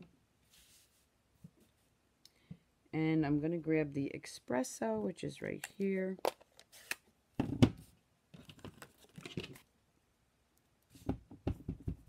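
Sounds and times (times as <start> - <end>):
soft rustling and scraping: 0.4 - 2.0.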